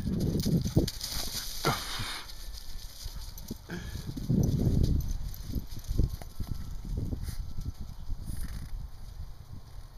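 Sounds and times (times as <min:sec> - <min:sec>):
dog paws scuffling on frozen ground: 0:00.0 - 0:09.9.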